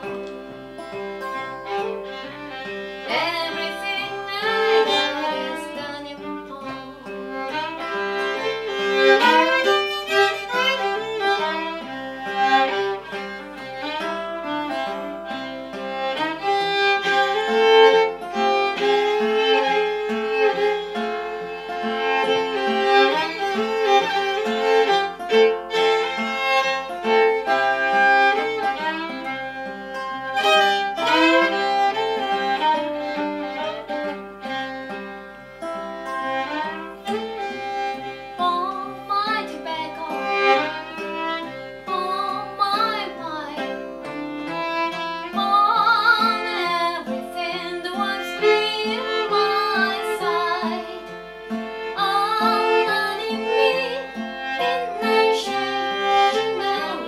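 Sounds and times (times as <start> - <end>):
acoustic guitar: 0.0 - 57.0
fiddle melody: 0.0 - 57.0.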